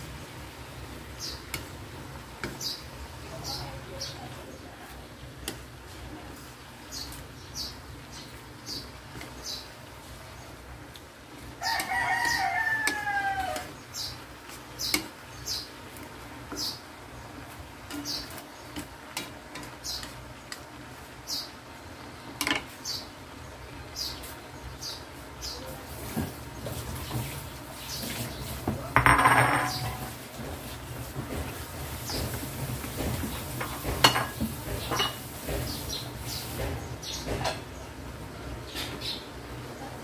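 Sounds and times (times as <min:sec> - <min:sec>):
spatula scraping in a wok: 0:11.3 - 0:20.6, 0:25.8 - 0:36.8
rooster crowing: 0:11.6 - 0:13.8.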